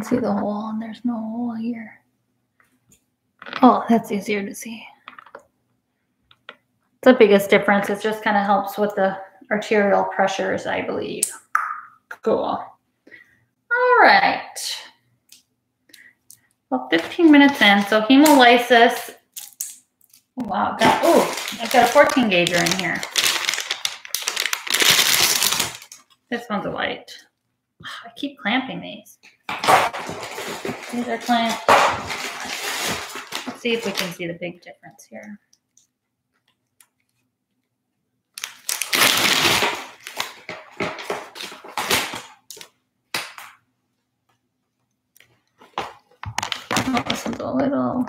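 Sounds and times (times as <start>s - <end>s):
plastic packaging crinkling: 19.3s - 26.2s, 29.6s - 34.2s, 38.4s - 43.5s, 45.5s - 47.4s.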